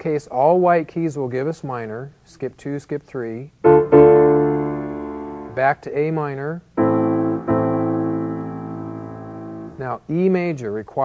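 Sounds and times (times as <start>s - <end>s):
low piano bass note: 3.6s - 5.6s, 6.8s - 9.8s
piano minor chord: 3.6s - 5.6s, 6.8s - 9.8s.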